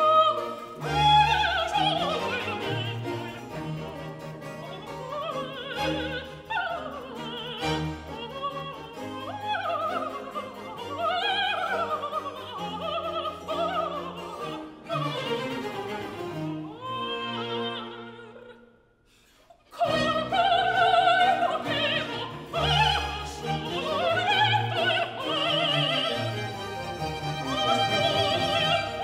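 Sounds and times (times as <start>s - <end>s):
string orchestra: 0.0s - 18.7s, 19.3s - 29.0s
soprano singing opera: 0.0s - 18.8s, 19.6s - 29.0s.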